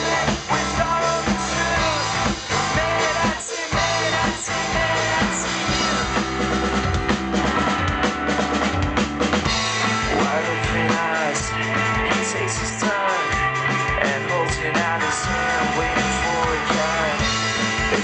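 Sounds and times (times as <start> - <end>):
live rock band playing: 0.0 - 18.0.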